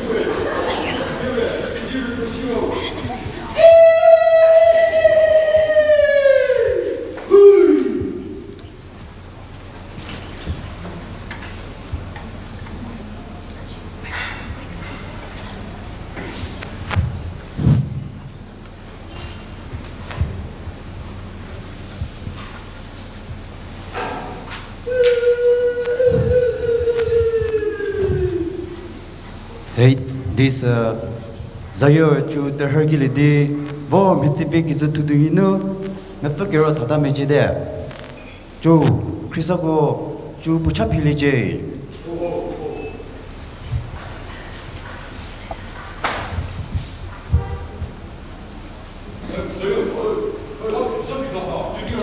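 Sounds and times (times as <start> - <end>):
man's long high-pitched call: 3.6 - 8.5, 24.8 - 29.0
low thuds: 14.4 - 29.0, 46.2 - 48.6.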